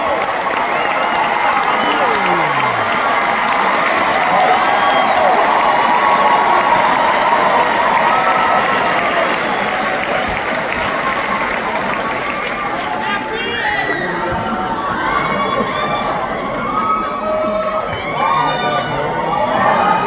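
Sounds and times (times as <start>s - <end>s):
whoops and shouts: 0.0s - 3.6s, 4.2s - 9.8s
audience cheering and applauding: 0.0s - 18.2s.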